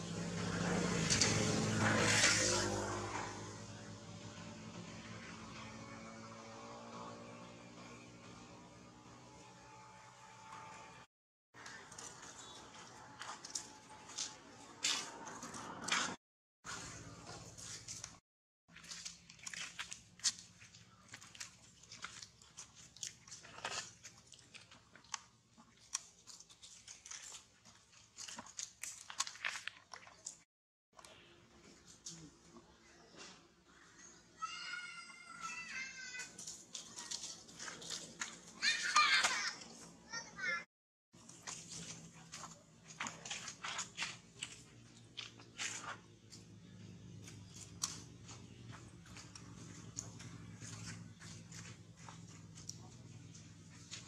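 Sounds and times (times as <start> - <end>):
vehicle passing by: 0.0 - 11.1, 11.9 - 18.2, 45.2 - 54.0
dry leaves crunching: 16.7 - 30.4, 35.5 - 39.5, 41.2 - 46.5.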